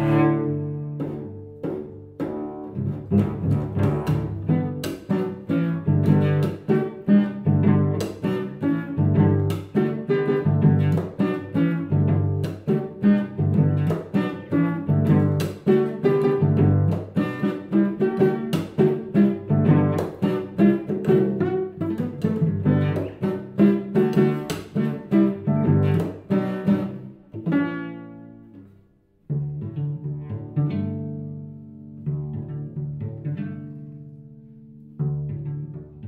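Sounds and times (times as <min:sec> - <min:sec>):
cello plucked chords: 0:00.0 - 0:36.0.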